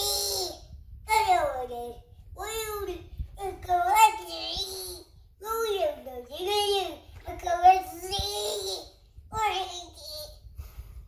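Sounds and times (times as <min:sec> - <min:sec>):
toddler singing: 0:00.0 - 0:10.4.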